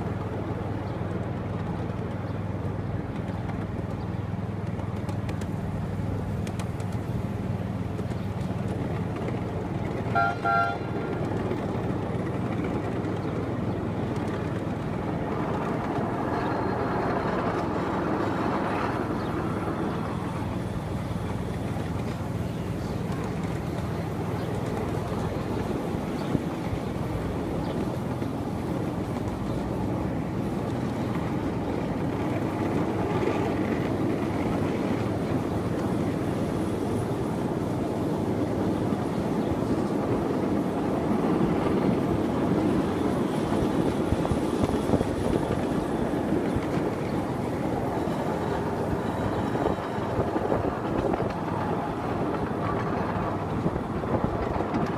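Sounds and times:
miniature train rumbling on track: 0.0s - 54.9s
train toots: 10.0s - 11.3s.

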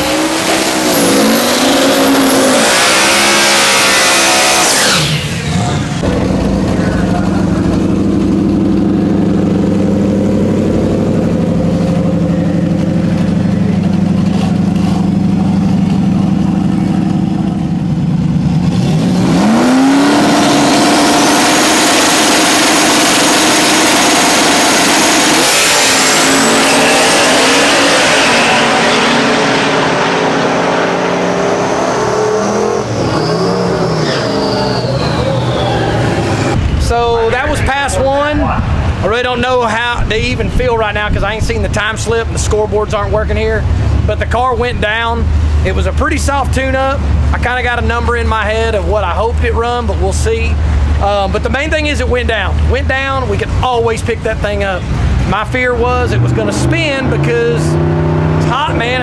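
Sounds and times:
drag car engine revving: 0.0s - 59.0s.

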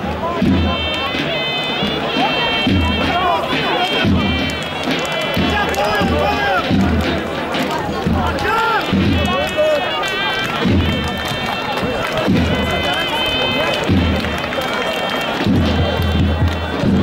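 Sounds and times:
crowd voices: 0.0s - 17.0s.

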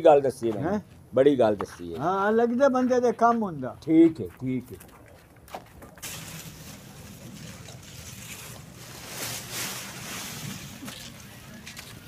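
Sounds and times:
maize stalks rustling: 4.5s - 12.0s.

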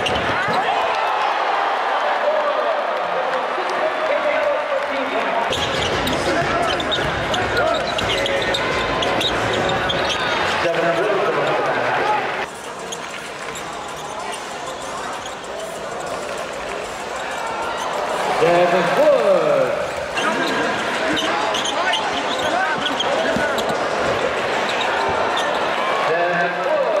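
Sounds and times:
sneakers squeaking on hardwood: 0.0s - 0.7s, 5.5s - 10.6s, 12.5s - 16.3s, 20.1s - 25.8s
arena crowd murmur: 0.0s - 27.0s
basketball bouncing: 5.5s - 10.2s.

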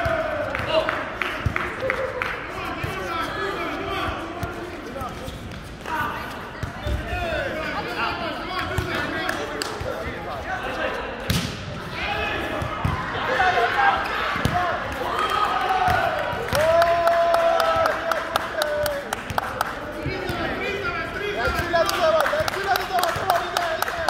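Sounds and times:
players calling and talking: 0.0s - 24.0s.

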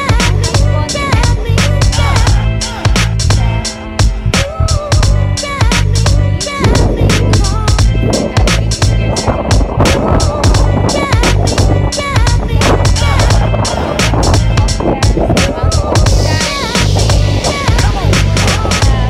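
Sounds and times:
instrumental music with beat: 0.0s - 19.0s.

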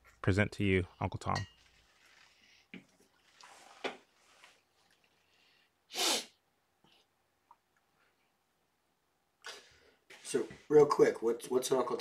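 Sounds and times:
person sneezing: 5.9s - 6.4s.

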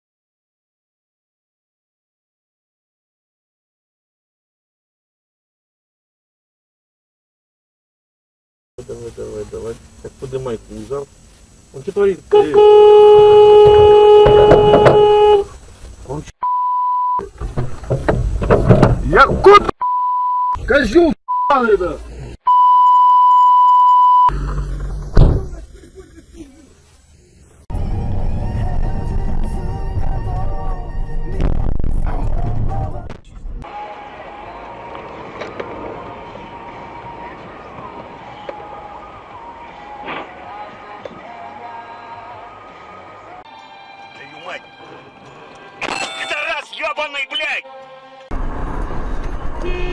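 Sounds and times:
vehicle rumble from inside: 8.8s - 16.4s, 23.9s - 43.4s, 48.3s - 49.9s
street traffic noise: 8.8s - 16.6s, 17.2s - 19.8s, 23.6s - 49.9s
one-tone censor bleep: 16.4s - 17.2s, 22.5s - 24.3s
thin wandering tune: 42.3s - 48.3s
man's voice: 46.0s - 47.7s.

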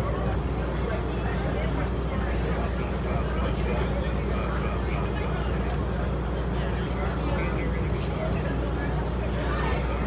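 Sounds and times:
faint voices talking: 0.0s - 10.0s.

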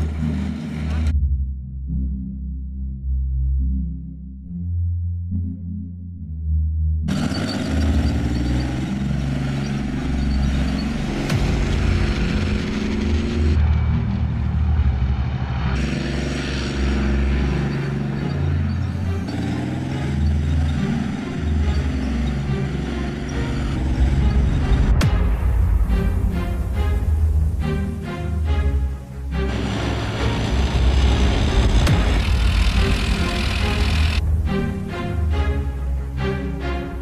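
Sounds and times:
tank diesel engine drone: 0.0s - 2.6s, 7.0s - 37.0s
steel tracks on concrete: 29.3s - 34.9s.

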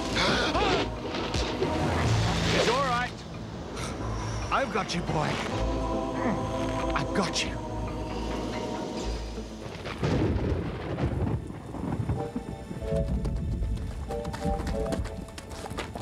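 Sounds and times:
dramatic music score: 0.0s - 16.0s
low thunder rumble: 9.7s - 14.0s
horse hoofbeats clip-clopping: 11.6s - 16.0s.

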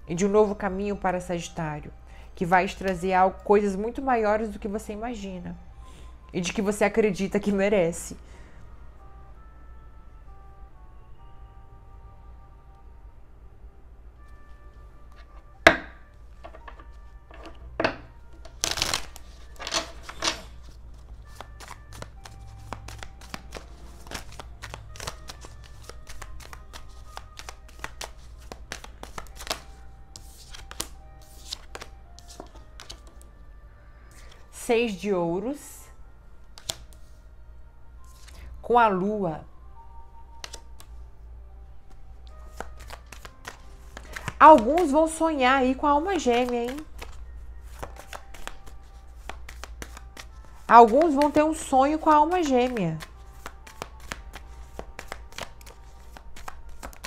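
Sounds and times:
cards shuffled by hand: 18.4s - 33.2s, 36.6s - 36.9s, 40.4s - 40.9s, 42.5s - 45.0s, 46.1s - 57.0s.

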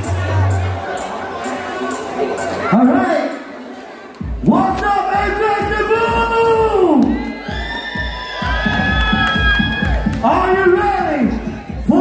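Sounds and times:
crowd cheering: 0.0s - 12.0s
loud dance music: 0.0s - 12.0s.

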